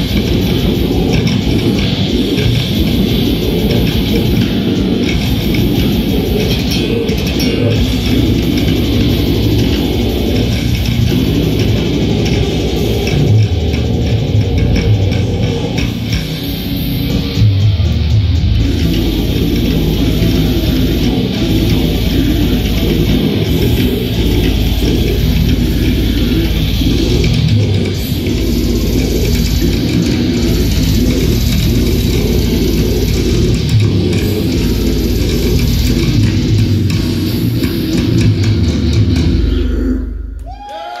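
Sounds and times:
live rock band playing: 0.0 - 39.4
long rising tones: 0.0 - 40.5
bass guitar: 0.0 - 41.0
distorted electric guitars: 0.0 - 41.0
rapid drumming: 0.0 - 41.0.

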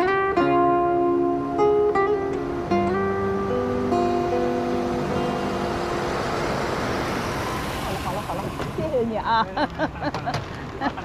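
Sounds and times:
car driving up: 1.0 - 11.0.

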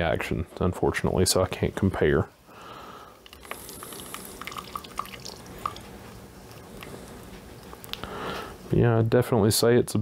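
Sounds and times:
water dripping into bucket: 3.2 - 6.0.

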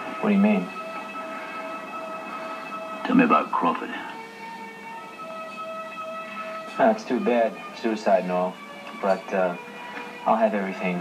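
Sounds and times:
sustained film score music: 0.0 - 11.0
tape hiss: 0.0 - 11.0.

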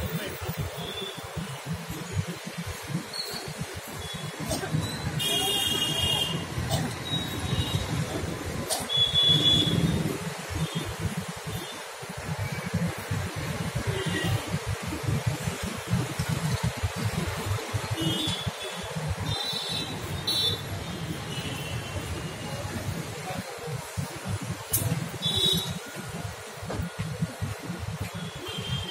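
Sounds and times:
traffic rumble: 0.0 - 28.9.

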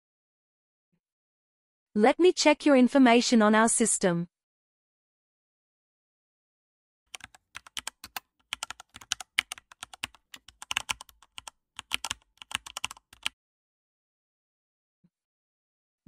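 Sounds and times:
computer keyboard typing: 7.1 - 13.3.

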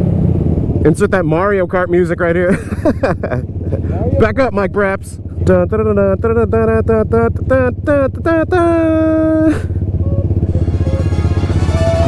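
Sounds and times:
motorcycle engines idling: 0.0 - 12.0
person laughing rapidly: 2.5 - 4.2, 8.7 - 11.1
person calling out: 3.8 - 4.8, 5.4 - 11.2
video game style music: 10.6 - 12.0.

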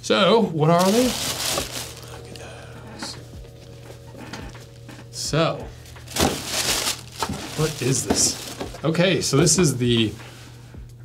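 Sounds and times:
tissue paper rustling: 0.7 - 2.6, 5.8 - 9.0
faint hum: 0.8 - 9.4.

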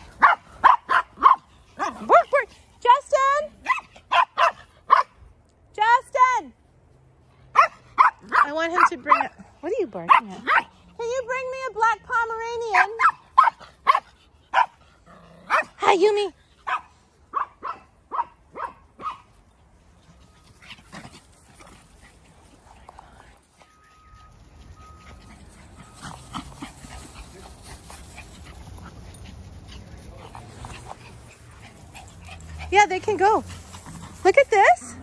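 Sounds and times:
small dogs yipping and barking: 0.0 - 5.3, 7.4 - 11.7, 12.5 - 22.6, 23.6 - 35.0
small dog barking: 0.2 - 2.2, 3.6 - 5.2, 7.5 - 9.4, 10.1 - 10.7, 12.8 - 14.8, 15.5 - 15.8, 16.6 - 19.3.

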